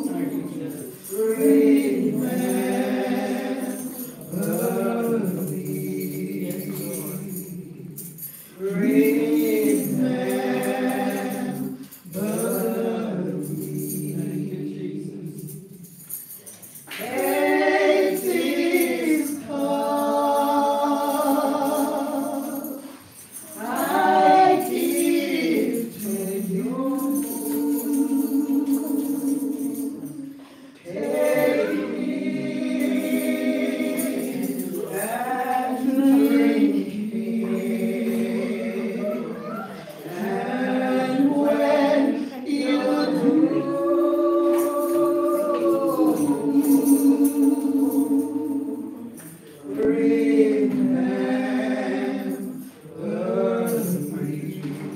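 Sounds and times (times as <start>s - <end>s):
women singing a hymn: 0.0s - 54.9s.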